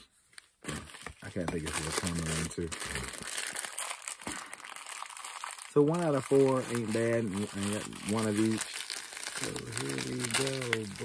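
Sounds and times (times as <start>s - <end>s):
plastic packaging crinkling: 0.4s - 11.0s.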